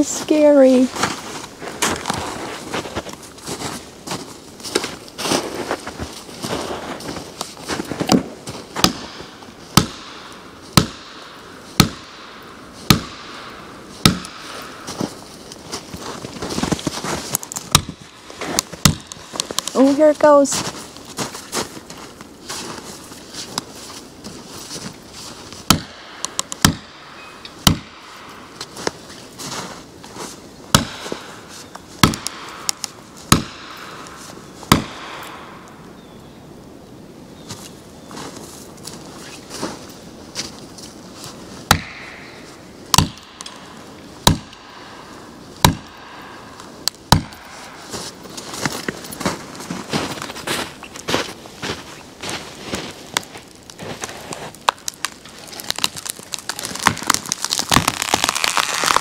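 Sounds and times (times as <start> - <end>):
wood knocking and crunching: 1.0 - 19.9, 20.5 - 35.4, 41.6 - 44.8, 45.6 - 59.0
axe pounding felling wedges: 8.0 - 11.2, 11.8 - 12.2, 12.8 - 15.1, 16.9 - 19.8, 25.6 - 28.3, 30.7 - 31.3, 32.0 - 34.0, 34.7 - 35.3, 41.7 - 42.2, 42.9 - 43.6, 44.2 - 44.7, 45.6 - 46.0, 47.1 - 47.6.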